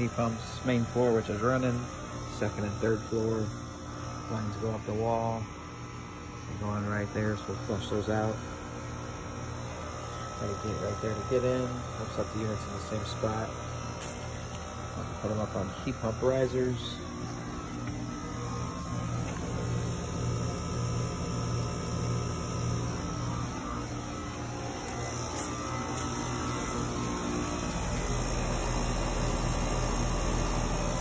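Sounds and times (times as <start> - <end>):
heat pump humming: 0.0 - 31.0.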